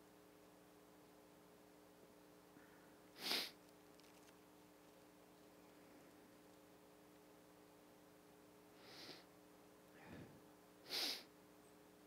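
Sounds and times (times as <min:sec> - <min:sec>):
nose sniff: 0:03.2 - 0:03.6, 0:08.8 - 0:09.2, 0:10.9 - 0:11.3.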